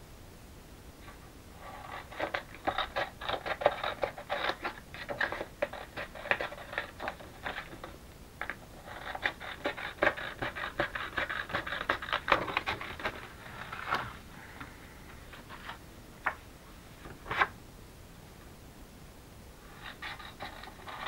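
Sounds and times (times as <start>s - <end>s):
paper rustling and crinkling: 8.9s - 14.2s, 15.3s - 16.4s.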